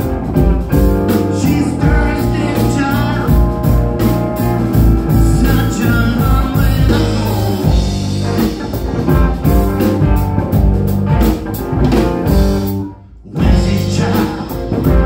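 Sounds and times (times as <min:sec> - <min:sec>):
drum kit: 0:00.0 - 0:15.0
electric bass: 0:00.0 - 0:15.0
electric guitar: 0:00.0 - 0:15.0.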